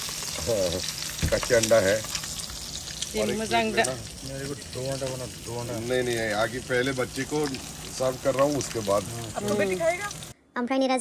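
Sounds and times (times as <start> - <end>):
eggs sizzling in a frying pan: 0.0 - 10.4.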